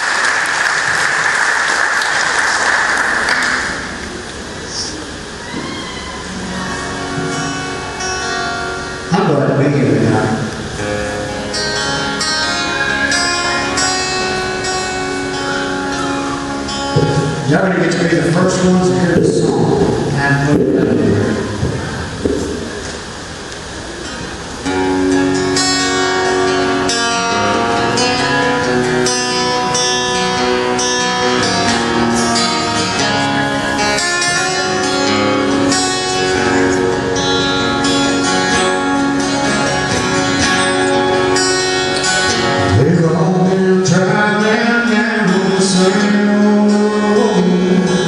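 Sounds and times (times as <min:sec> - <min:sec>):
acoustic guitar playing: 0:00.0 - 0:48.0
man singing: 0:42.6 - 0:48.0.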